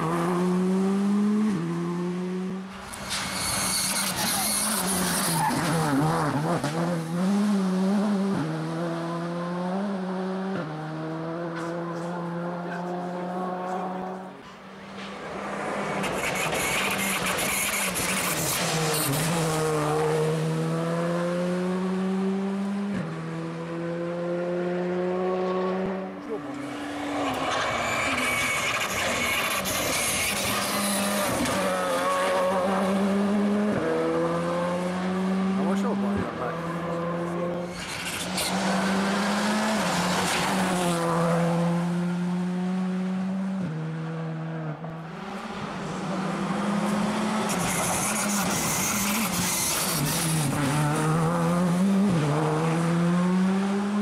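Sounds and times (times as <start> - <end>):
rally car engine at full throttle: 0.0 - 54.0.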